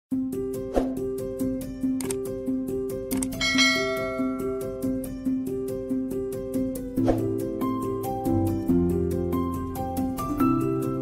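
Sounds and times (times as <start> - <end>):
click: 2.0 - 2.2
plucked intro music: 3.3 - 5.4
bright bell ding: 3.4 - 4.9.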